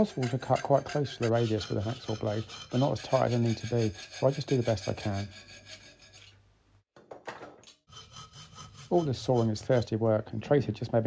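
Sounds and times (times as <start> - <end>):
hacksaw cutting metal: 0.0 - 6.4, 7.8 - 9.9.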